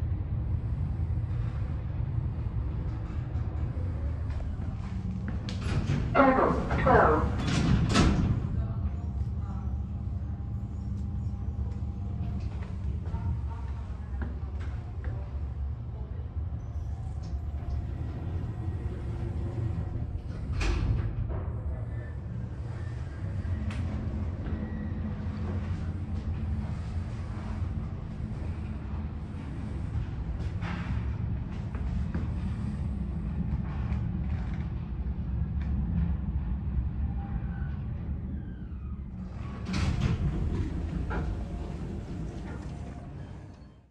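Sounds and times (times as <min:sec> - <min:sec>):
lift cab rumble: 0:00.0 - 0:43.9
lift doors sliding open: 0:02.9 - 0:08.7, 0:17.4 - 0:33.0, 0:37.8 - 0:43.9.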